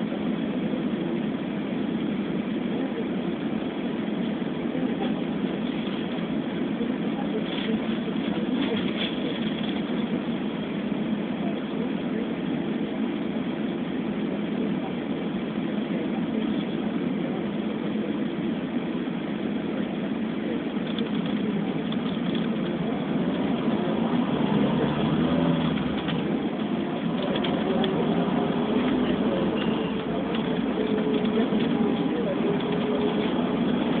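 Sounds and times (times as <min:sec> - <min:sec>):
car engine and road hum: 0:00.0 - 0:34.0.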